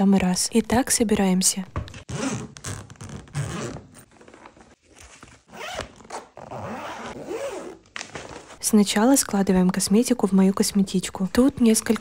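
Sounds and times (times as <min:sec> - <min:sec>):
suitcase zipper unzipping: 0:02.1 - 0:04.1, 0:05.5 - 0:07.8.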